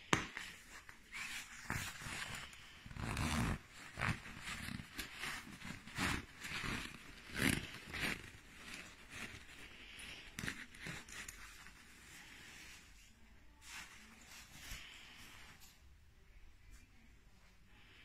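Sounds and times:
nylon jacket rustling: 0.5s - 12.9s.

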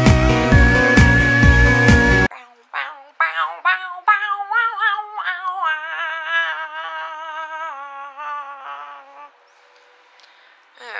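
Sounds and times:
woman humming a tune: 2.3s - 9.4s.

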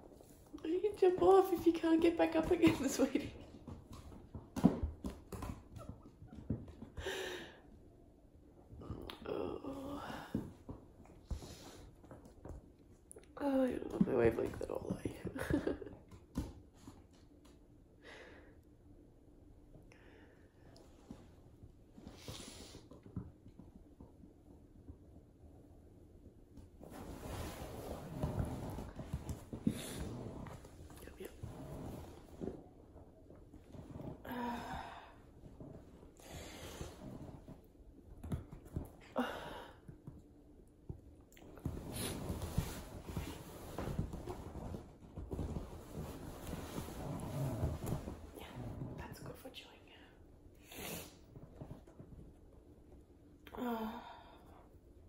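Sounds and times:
faint rustling: 41.4s - 49.3s.

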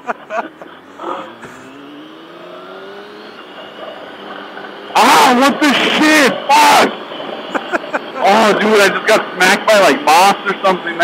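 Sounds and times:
motorcycle engine accelerating: 0.0s - 11.0s.

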